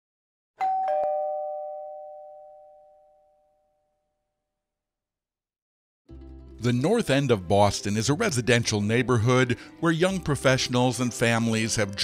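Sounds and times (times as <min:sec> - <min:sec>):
doorbell two-note chime: 0:00.6 - 0:04.1.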